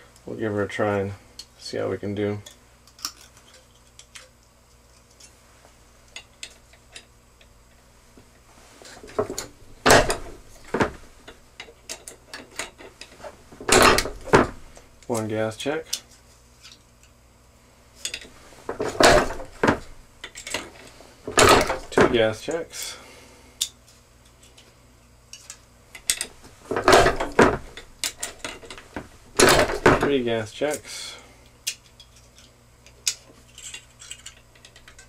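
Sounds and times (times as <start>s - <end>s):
metal clanking from arbor press: 9.1s - 11.0s, 13.6s - 14.7s, 18.8s - 20.0s, 21.3s - 22.3s, 26.1s - 28.7s, 29.4s - 30.2s
sharp knocks: 9.1s - 11.0s, 13.6s - 14.7s, 18.7s - 20.0s, 21.3s - 22.2s, 26.7s - 27.8s.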